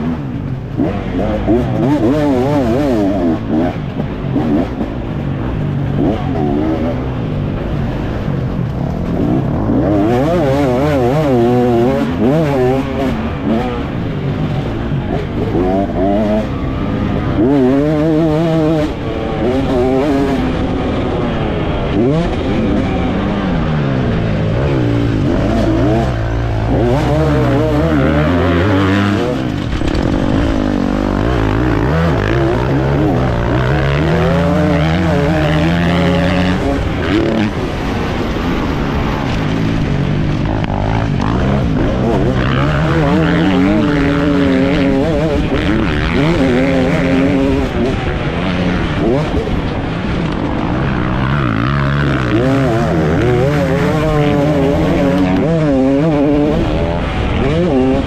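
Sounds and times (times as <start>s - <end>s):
motocross engine revving: 0.0s - 58.0s.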